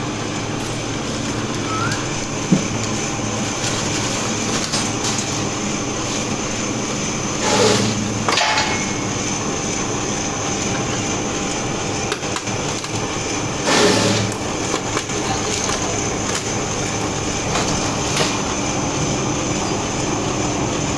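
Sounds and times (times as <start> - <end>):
paper shredder motor hum: 0.0 - 20.9
paper being shredded: 1.3 - 8.3, 12.4 - 18.6.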